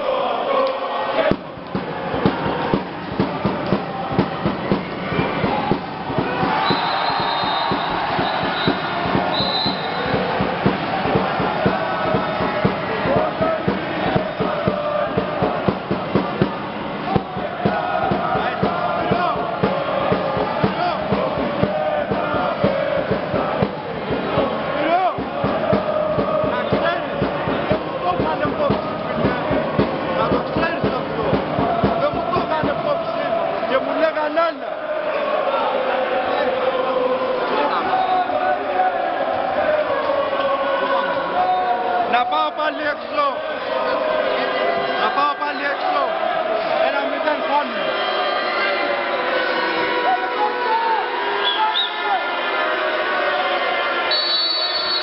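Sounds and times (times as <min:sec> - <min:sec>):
crowd chanting and singing: 0:00.0 - 0:55.0.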